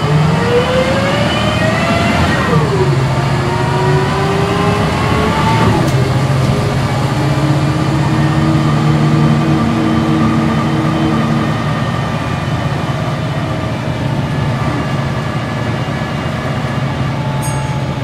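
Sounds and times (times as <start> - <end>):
bus engine accelerating: 0.0 - 18.0.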